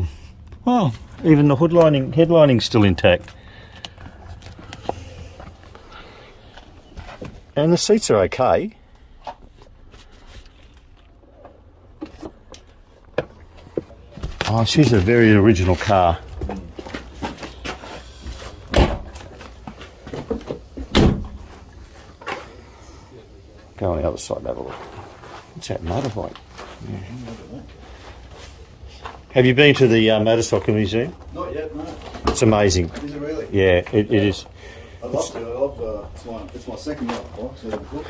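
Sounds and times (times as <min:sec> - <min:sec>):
small knocks and rustles: 0:09.3 - 0:22.6
car door thudding shut: 0:18.7 - 0:19.1, 0:20.9 - 0:21.4.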